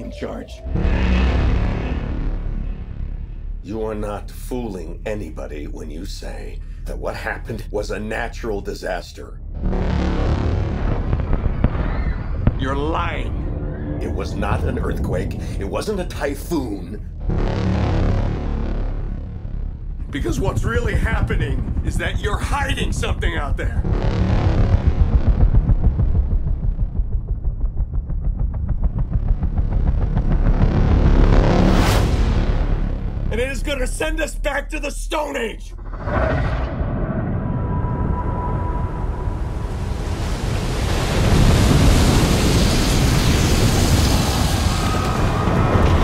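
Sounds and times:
rising rush of noise: 0:00.0 - 0:03.6, 0:09.6 - 0:15.0, 0:23.8 - 0:33.3, 0:35.8 - 0:46.0
music: 0:00.0 - 0:34.0
deep destruction rumble: 0:00.0 - 0:46.0.

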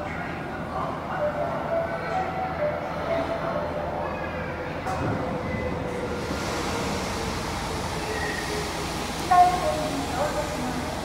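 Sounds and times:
subway train running noise: 0:00.0 - 0:11.0.

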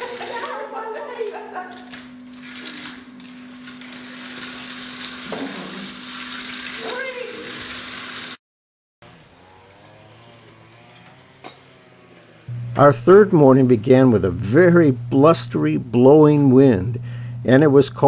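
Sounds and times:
toy slot cars whirring: 0:00.0 - 0:08.4, 0:09.1 - 0:12.5.

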